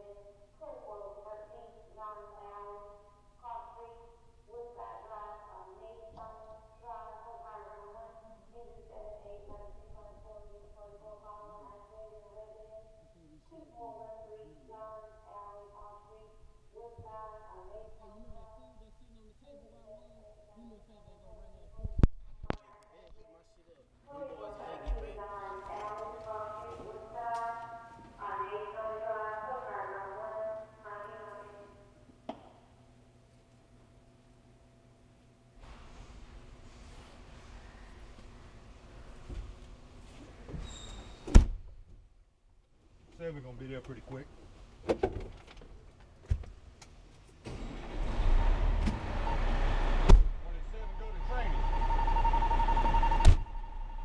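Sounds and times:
steady low hum: 0:00.0 - 0:40.5, 0:41.8 - 0:54.0
diesel engine running loud: 0:47.9 - 0:54.0
sharp bang: 0:50.1 - 0:54.0
indistinct speech: 0:50.4 - 0:52.5
steady high electronic tone: 0:50.4 - 0:54.0.

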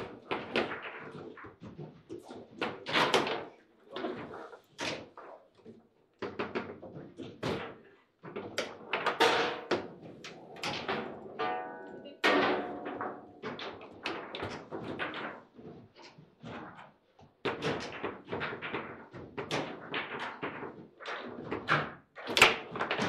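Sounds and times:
foosball rods clacking: 0:08.4 - 0:15.7, 0:17.5 - 0:23.0.

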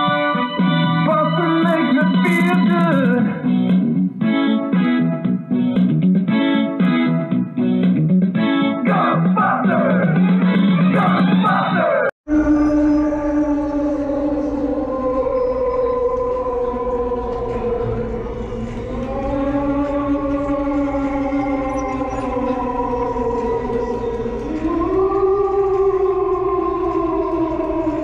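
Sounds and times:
wavering ghostly moan: 0:12.3 - 0:28.0.

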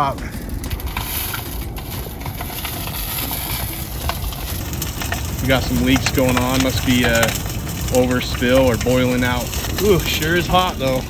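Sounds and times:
rumbling fire with crackles: 0:00.0 - 0:11.0.

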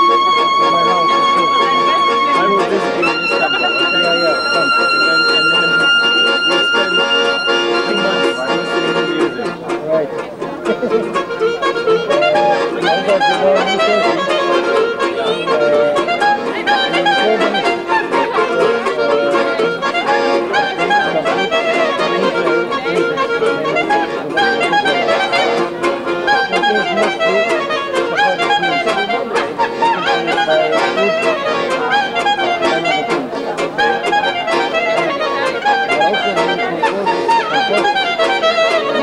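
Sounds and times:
accordion: 0:00.0 - 0:39.0
clarinet: 0:00.0 - 0:39.0.

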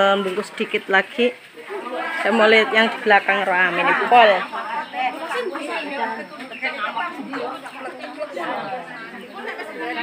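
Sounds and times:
several people talking: 0:00.0 - 0:10.0.

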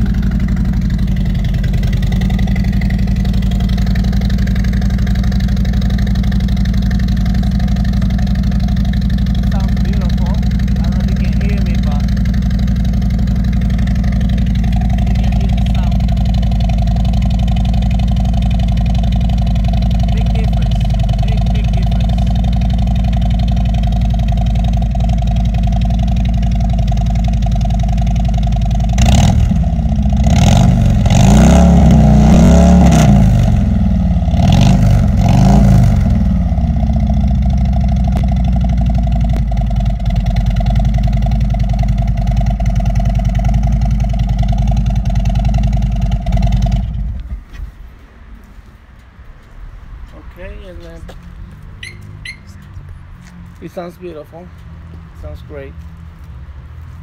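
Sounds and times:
motorcycle engine idling and revving: 0:00.0 - 0:57.0.

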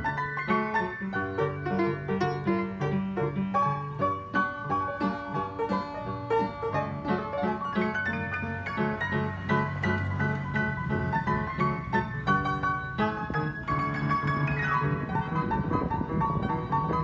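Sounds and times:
upright piano melody: 0:00.0 - 0:17.0.

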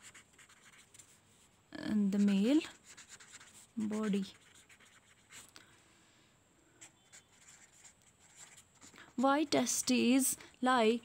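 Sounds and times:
pen scratching on paper: 0:00.0 - 0:01.2, 0:02.1 - 0:05.5, 0:06.8 - 0:10.6.

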